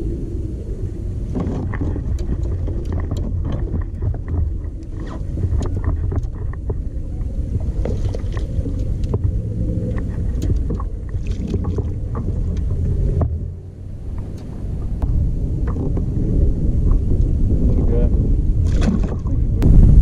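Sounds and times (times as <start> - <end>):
wind rumbling on microphone: 0.0 - 20.0
light clicks and knocks from gear: 1.3 - 13.4.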